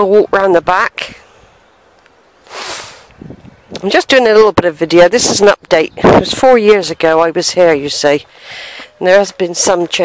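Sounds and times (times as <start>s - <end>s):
faint outdoor background: 0.0s - 10.0s
breath close to microphone: 2.4s - 3.2s, 8.3s - 9.0s.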